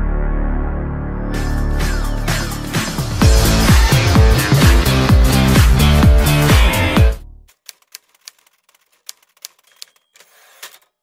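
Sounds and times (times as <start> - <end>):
electronic dance music: 1.3 - 7.2
typewriter key clacks: 7.5 - 10.9
typewriter rasp: 7.5 - 11.0.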